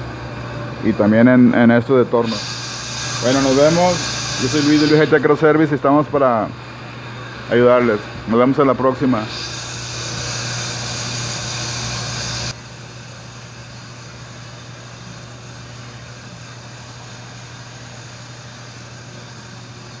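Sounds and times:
machinery humming: 0.0s - 20.0s
machinery hissing: 2.0s - 6.6s, 7.4s - 12.6s.

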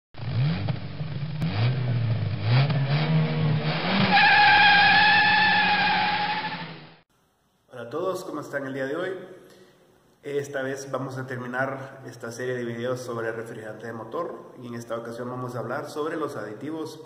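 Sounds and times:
race car engine accelerating: 0.2s - 7.0s
high tyre squeal: 3.8s - 6.9s.

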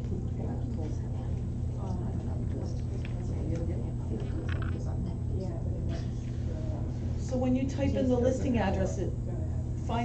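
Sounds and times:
faint indistinct speech: 0.0s - 10.0s
steady low hum: 0.0s - 10.0s.

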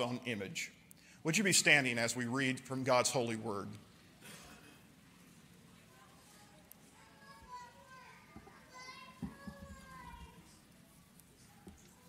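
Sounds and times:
young child's high voice: 5.9s - 10.6s.

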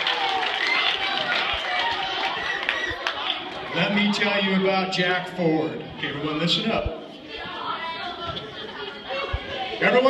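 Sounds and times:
chatter of many voices: 0.0s - 10.0s.

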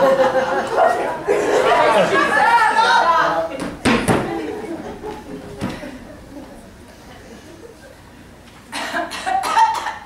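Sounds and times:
person coughing: 8.7s - 10.0s.

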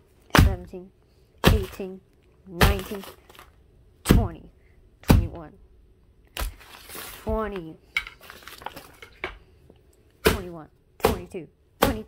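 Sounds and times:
paper rustling and crinkling: 2.9s - 3.6s, 6.4s - 7.4s, 8.1s - 9.2s
paper tearing: 6.4s - 7.3s.

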